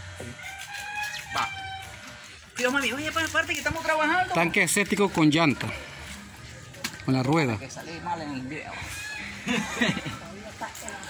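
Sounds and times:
rooster crowing: 0:00.3 - 0:02.2, 0:08.8 - 0:09.6.

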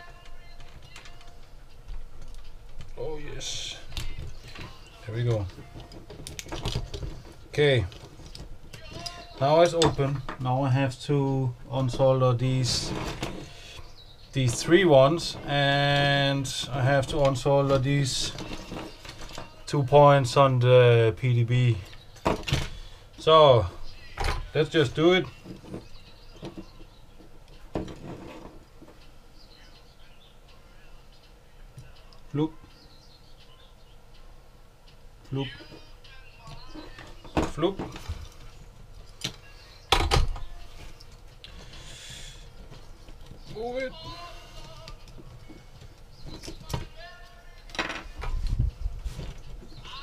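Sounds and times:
man humming under his breath: 0:41.5 - 0:42.6.

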